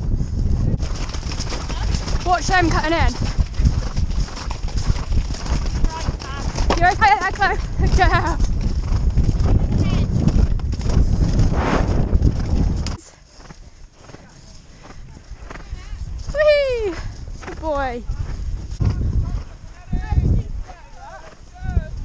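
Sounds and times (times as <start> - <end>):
wind rumble on microphone: 0.0 - 22.0
horse hoofbeats on grass: 0.4 - 22.0.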